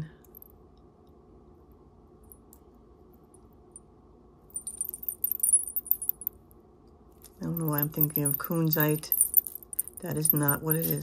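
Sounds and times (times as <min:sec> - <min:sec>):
small bells jingling: 0:04.6 - 0:06.3, 0:07.3 - 0:11.0.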